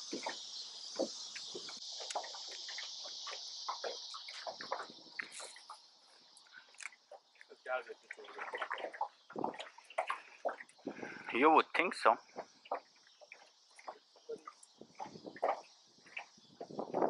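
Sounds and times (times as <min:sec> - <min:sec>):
steady high hiss: 0:00.0 - 0:08.2
water lapping against a boat: 0:00.0 - 0:17.0.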